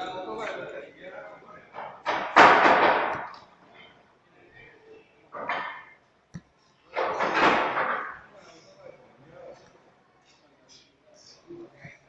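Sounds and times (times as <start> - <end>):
people's voices in echoing shed: 0.0 - 5.9.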